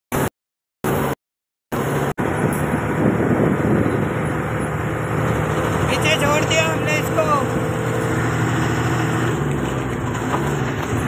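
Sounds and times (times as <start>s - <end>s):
low engine hum: 0.9s - 11.0s
tyre and wind noise: 1.8s - 6.8s.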